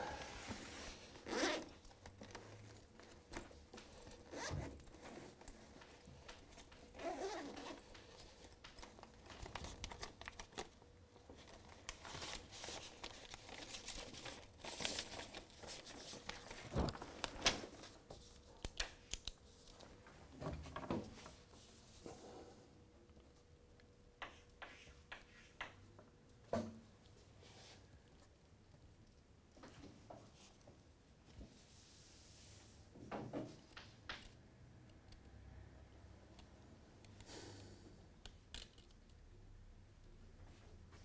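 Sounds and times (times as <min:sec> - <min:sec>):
chalk tapping: 0:24.2 - 0:25.8
chalk scratching on blackboard: 0:24.3 - 0:25.6.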